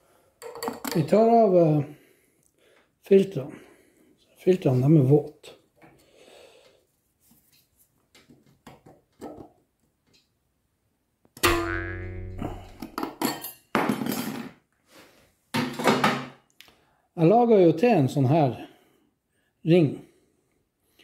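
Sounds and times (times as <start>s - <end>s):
wire springing free with twang: 11.4s - 13.0s.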